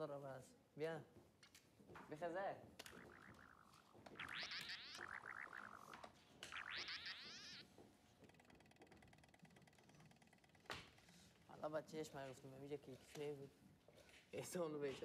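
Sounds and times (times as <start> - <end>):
electronic chirps with rising sweeps: 2.8 - 7.6.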